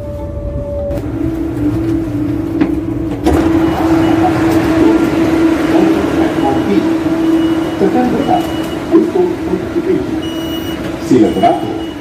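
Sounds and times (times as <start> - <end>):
electric train humming: 0.0 - 12.0.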